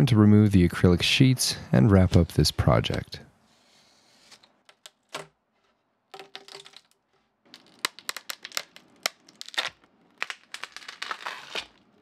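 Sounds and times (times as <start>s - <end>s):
acrylic sheets cracking off resin: 4.4s - 12.0s.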